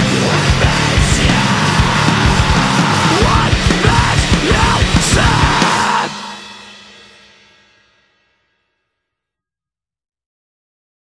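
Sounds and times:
metalcore band playing: 0.0 - 7.6.

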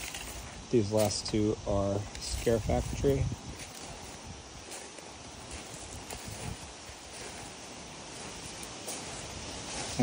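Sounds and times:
footsteps on gravel: 0.0 - 10.0
outdoor background hiss: 0.0 - 10.0.

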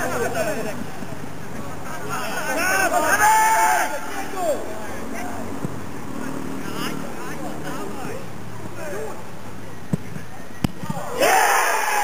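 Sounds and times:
open-air hiss: 0.0 - 12.0
people shouting: 2.5 - 4.6, 10.9 - 12.0.

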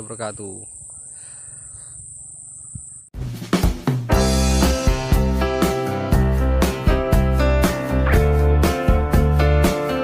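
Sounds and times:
crickets chirping: 0.0 - 3.1.

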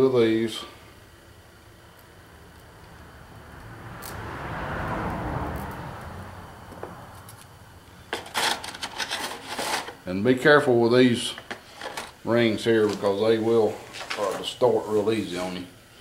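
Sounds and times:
vehicle passing by: 2.3 - 7.9.

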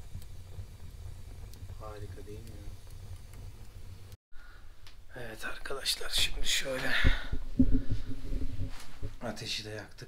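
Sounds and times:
fire popping: 0.0 - 4.2, 4.8 - 9.9
wood fire crackling: 0.0 - 10.0.

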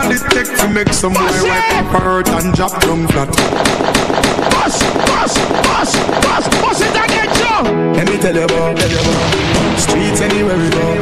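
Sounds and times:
rapid gunshot sound effects: 3.4 - 7.7, 8.8 - 10.4
voices: 4.4 - 7.7.

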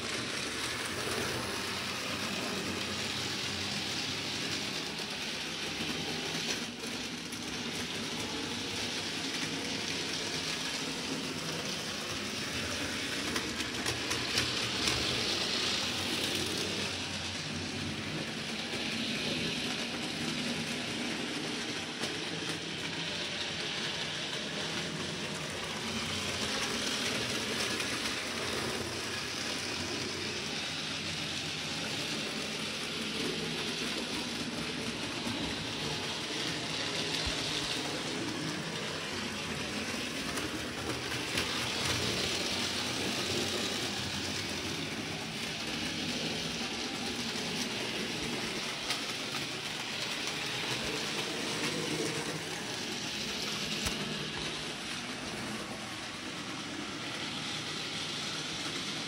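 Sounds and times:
model train motor whirring: 0.0 - 59.0.

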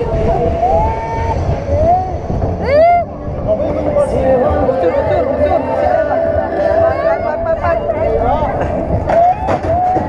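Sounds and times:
roller coaster cars on track: 0.0 - 10.0
wind rumble on microphone: 0.0 - 10.0.

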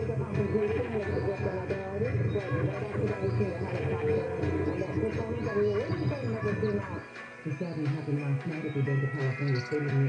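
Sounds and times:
background music: 0.0 - 10.0
radio voice: 0.0 - 10.0.

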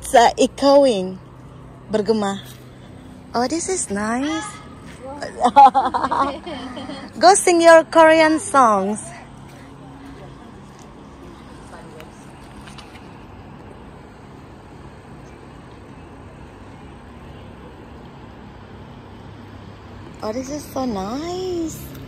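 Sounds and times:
distant engine hum: 0.0 - 22.0
outdoor background noise: 0.0 - 22.0.

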